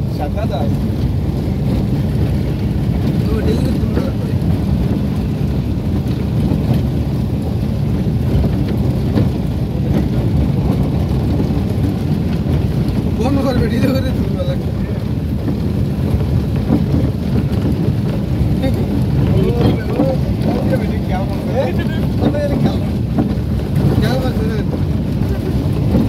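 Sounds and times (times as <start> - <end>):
vehicle rumble on paved road: 0.0 - 26.0.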